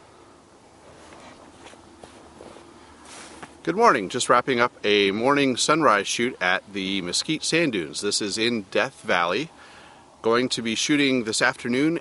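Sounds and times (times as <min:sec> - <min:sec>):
low outdoor hiss: 0:00.0 - 0:12.0
footsteps on sand: 0:00.8 - 0:03.6.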